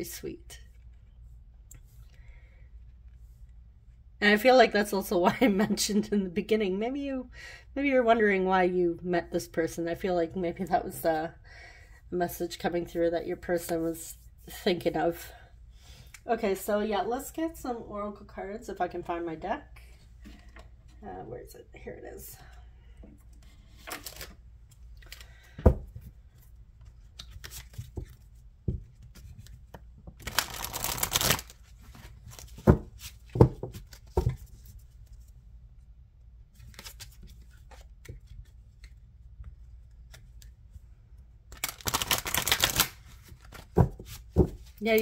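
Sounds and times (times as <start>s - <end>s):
cards being shuffled: 23.7s - 25.3s, 26.3s - 35.3s, 36.5s - 40.6s, 41.5s - 45.0s.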